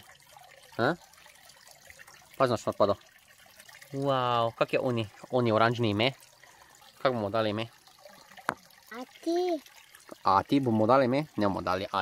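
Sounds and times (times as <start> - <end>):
fountain water trickling: 0.0 - 12.0.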